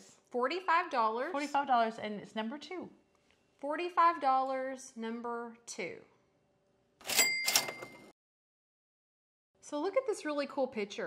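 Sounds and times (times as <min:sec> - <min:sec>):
cash register bell ringing: 0:07.0 - 0:08.1
cash register clatter: 0:07.0 - 0:08.1.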